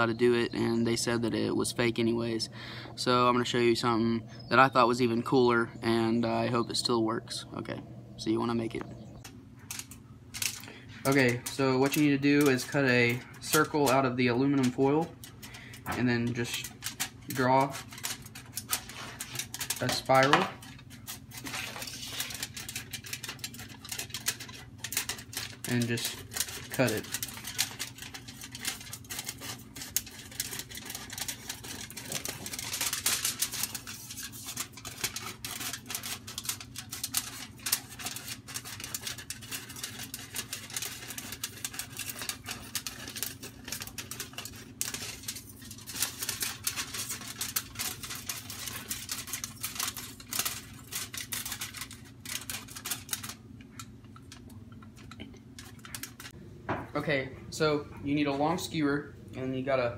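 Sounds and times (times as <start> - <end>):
foil crinkling: 9.6 - 56.4
scissors snipping foil: 16.2 - 53.8.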